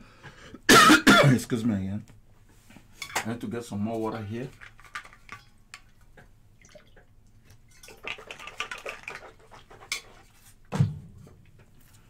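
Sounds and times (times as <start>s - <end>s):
water pouring: 4.4s - 10.3s.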